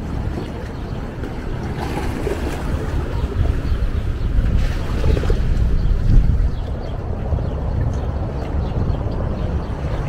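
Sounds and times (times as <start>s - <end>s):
lake water washing on shore: 0.0s - 10.0s
wind buffeting microphone: 0.0s - 10.0s.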